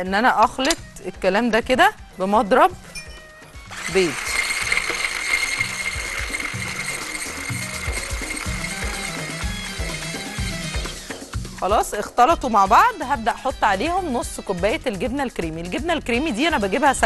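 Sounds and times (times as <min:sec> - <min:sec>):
electric hand blender whisking: 0:03.6 - 0:11.5.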